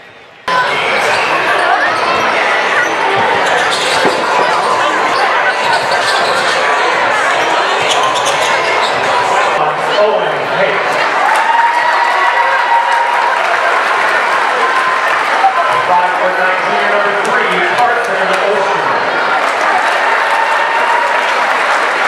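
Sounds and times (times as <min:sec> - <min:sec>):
echoing crowd chatter: 0:00.0 - 0:22.0.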